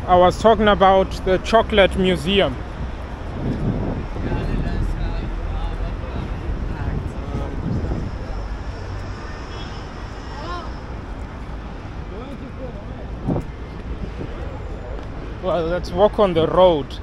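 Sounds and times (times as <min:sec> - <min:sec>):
wind rumble on microphone: 0:00.0 - 0:15.8
passers-by talking: 0:00.0 - 0:17.0.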